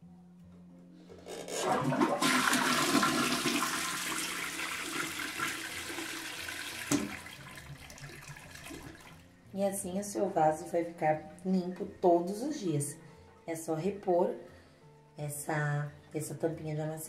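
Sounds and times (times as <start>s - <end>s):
toilet flushing: 1.4s - 9.2s.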